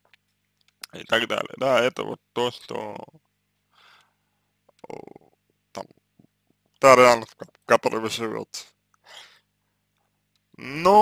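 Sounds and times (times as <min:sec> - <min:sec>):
man speaking: 0:00.8 - 0:03.2, 0:04.7 - 0:05.9, 0:06.8 - 0:08.7, 0:10.6 - 0:11.0
mouth sound: 0:04.7 - 0:06.3.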